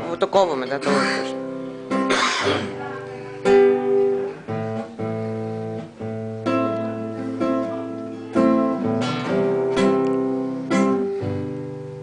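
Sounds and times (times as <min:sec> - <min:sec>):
classical guitar strumming chords: 0:00.0 - 0:12.0.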